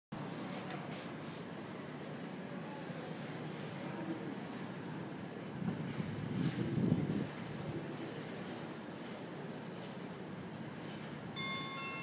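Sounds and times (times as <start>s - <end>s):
station platform hum: 0.1s - 12.0s.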